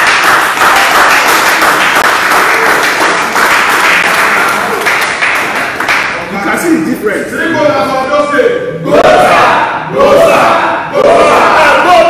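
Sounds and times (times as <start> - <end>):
group shouting rallying cry: 8.8 - 12.0.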